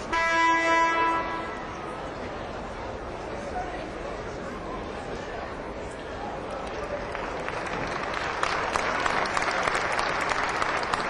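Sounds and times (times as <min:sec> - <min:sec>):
arena horn buzz: 0:00.0 - 0:01.7.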